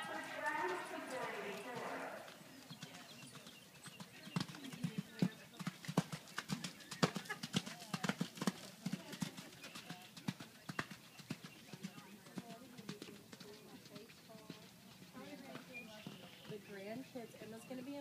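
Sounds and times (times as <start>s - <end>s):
horse hoofbeats cantering: 0.0s - 18.0s.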